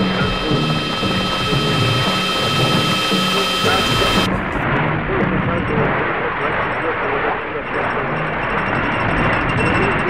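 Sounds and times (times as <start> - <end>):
thin high tones: 0.0 - 4.3
low pitched drone: 0.0 - 4.5.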